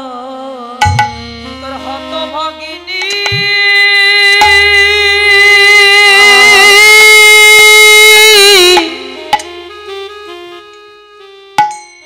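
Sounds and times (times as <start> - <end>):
melody instrument long high note: 0.9 - 12.0.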